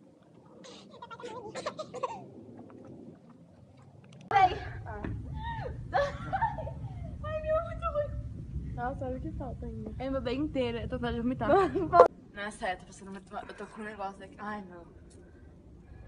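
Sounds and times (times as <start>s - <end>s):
girls gulping water: 0.3s - 4.3s
girls laughing and giggling: 0.8s - 2.2s, 5.3s - 7.2s, 11.5s - 12.1s
wind rumble on microphone: 1.2s - 12.4s
girl shrieking: 5.3s - 6.1s.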